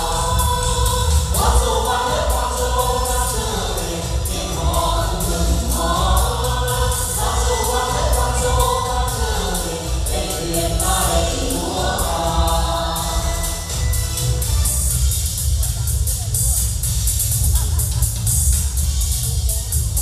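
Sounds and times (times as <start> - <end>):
choir singing: 0.0 - 14.2
amplified instrumental accompaniment: 0.0 - 17.4.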